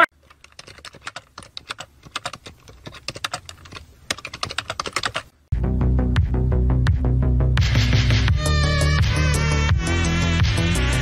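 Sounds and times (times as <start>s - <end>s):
music with deep bass: 5.5s - 11.0s.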